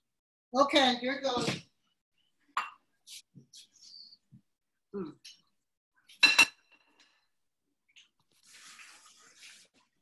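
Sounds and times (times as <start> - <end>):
kitchenware clinking and scraping: 6.1 - 7.0.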